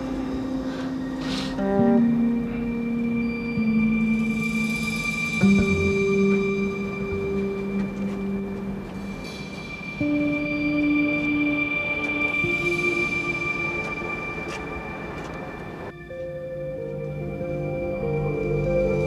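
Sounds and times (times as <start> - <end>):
sustained synthesizer chords: 0.0 - 19.0.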